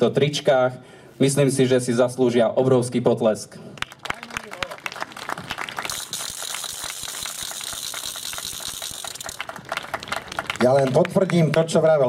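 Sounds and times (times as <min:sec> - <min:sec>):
crowd applauding: 0:03.8 - 0:12.0.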